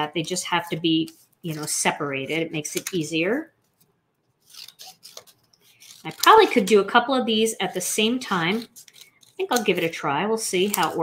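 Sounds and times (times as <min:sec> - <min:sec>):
scissors snipping cardstock: 0:04.4 - 0:06.9, 0:07.6 - 0:11.0.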